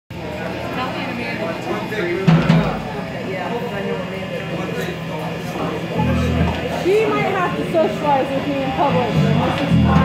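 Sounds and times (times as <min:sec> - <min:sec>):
murmur of crowd talk: 0:00.1 - 0:10.0
band bass note: 0:06.0 - 0:06.6, 0:08.9 - 0:10.0.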